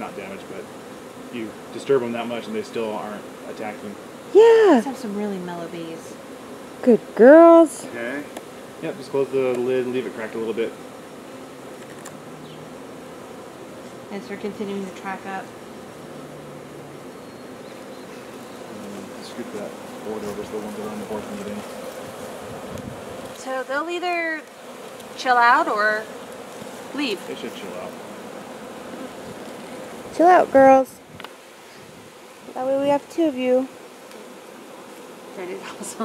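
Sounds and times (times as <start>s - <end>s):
bees buzzing: 0.0s - 36.0s.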